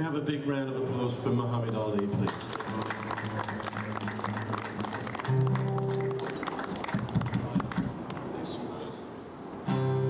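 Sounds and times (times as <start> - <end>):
small crowd clapping: 1.6 - 8.4.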